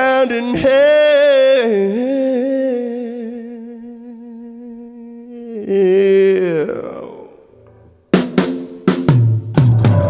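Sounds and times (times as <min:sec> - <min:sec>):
man singing sustained note: 0:01.8 - 0:07.4.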